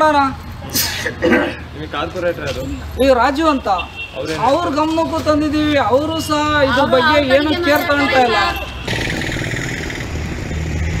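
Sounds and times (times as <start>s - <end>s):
vehicle engine running: 8.9s - 11.0s.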